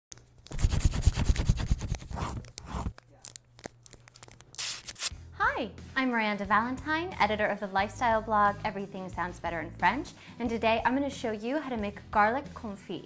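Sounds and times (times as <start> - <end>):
paper crumpling and tearing: 0.4 - 5.1.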